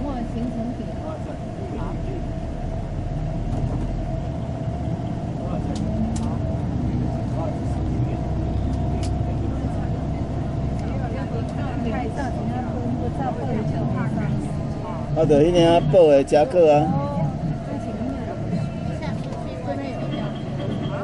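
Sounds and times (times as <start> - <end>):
bus engine low rumble: 0.0 - 21.0.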